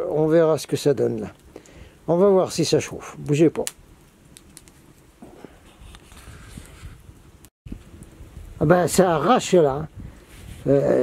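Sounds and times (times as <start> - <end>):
soft hiss of flame: 0.8 - 11.0
candle log crackling and popping: 2.4 - 9.1.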